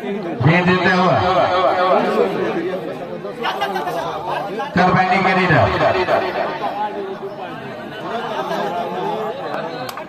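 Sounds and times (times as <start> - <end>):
men talking over one another: 0.0 - 10.0
louder voice: 4.8 - 6.9.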